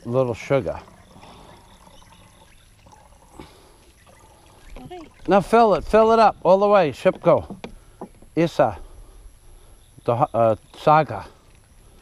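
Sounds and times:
water trickling into bottle: 0.0 - 6.0.

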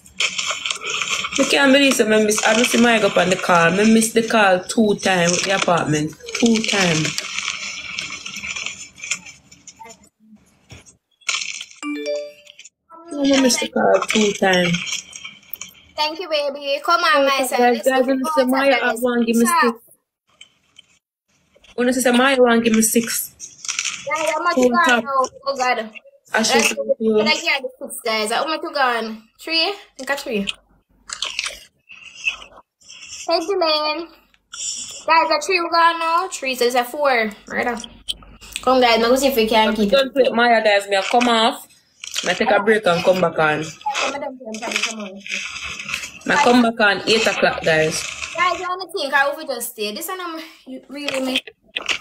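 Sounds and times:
person chewing something crunchy: 0.0 - 1.5, 6.2 - 9.9, 14.0 - 16.0, 30.4 - 33.3, 41.0 - 42.4, 43.8 - 48.6, 51.4 - 52.0.

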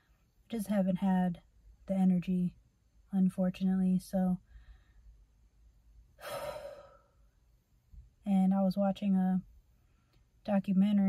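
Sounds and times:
woman sighing: 6.2 - 7.1.

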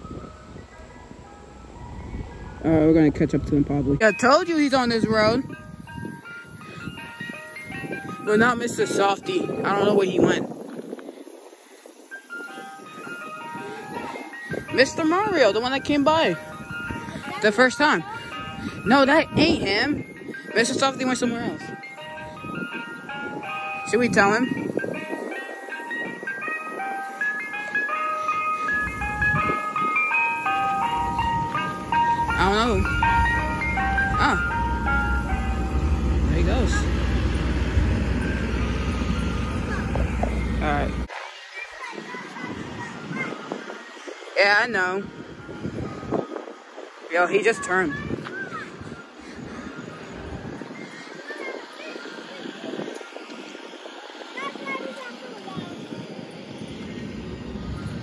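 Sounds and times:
ice cream truck chime tune: 0.0 - 58.0
vehicle engine rumble: 30.6 - 41.1.

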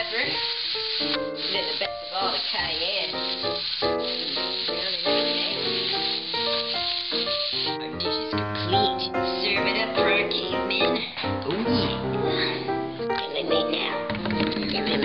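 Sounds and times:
meat sizzling in a frying pan: 0.0 - 11.1
background music: 0.0 - 15.0.

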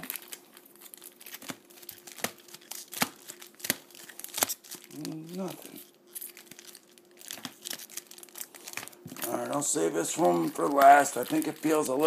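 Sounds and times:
foil wrappers crinkling: 0.0 - 12.0.

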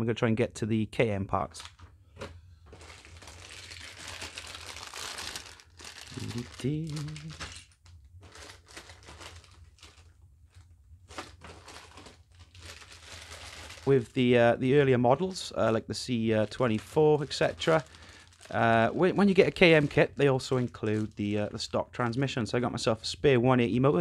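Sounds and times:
plastic bags crinkling and rustling: 1.5 - 14.2, 16.1 - 21.6.

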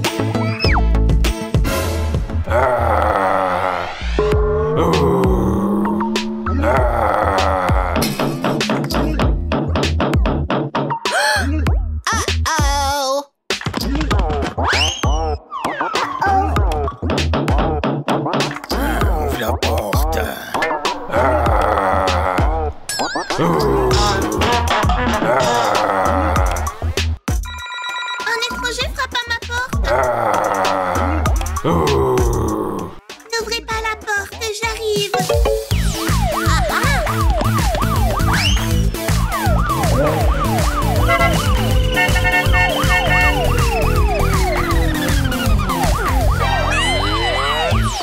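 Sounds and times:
upbeat background music: 0.0 - 3.0, 3.7 - 48.0
mobile phone ringtone: 27.4 - 28.6
police siren yelping: 35.8 - 48.0.

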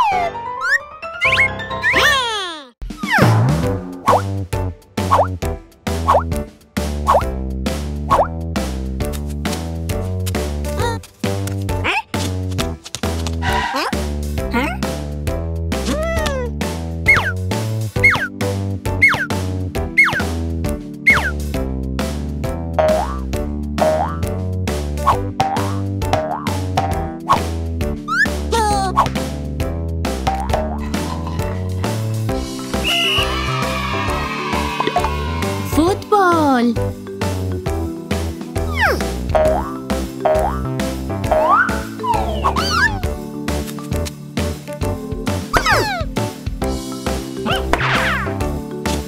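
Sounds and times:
upward-sliding cartoon sound effects: 0.0 - 3.3, 41.4 - 43.1
bouncy children's music: 0.0 - 49.0
cartoon plop sound effects: 22.8 - 23.2, 30.3 - 30.8, 41.3 - 43.1, 45.6 - 46.1, 47.4 - 48.3.

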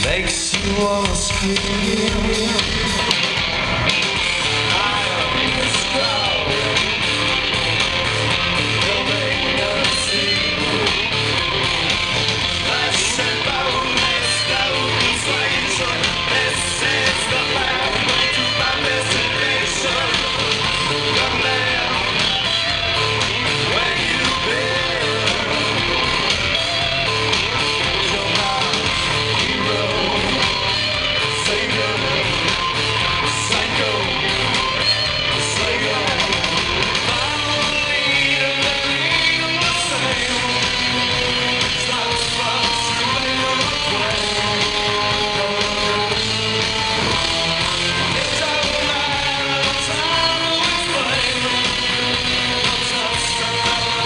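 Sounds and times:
bending electric guitar lines: 0.0 - 54.0
live rock band playing: 0.0 - 54.0.

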